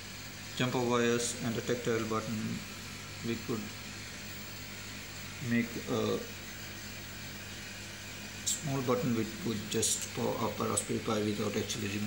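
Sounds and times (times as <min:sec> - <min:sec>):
room tone hum: 0:00.0 - 0:12.0.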